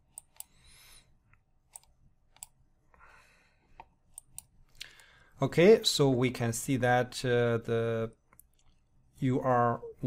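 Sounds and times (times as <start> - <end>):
faint computer mouse clicks: 1.3 - 2.6.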